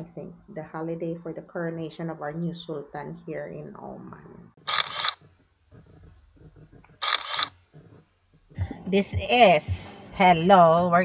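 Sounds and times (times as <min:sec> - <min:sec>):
camera shutter double-click: 0:04.7 - 0:05.2.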